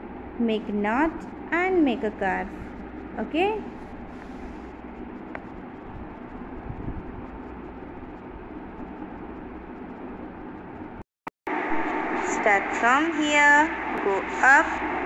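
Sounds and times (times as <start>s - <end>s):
steady hiss and hum: 0.0s - 15.0s.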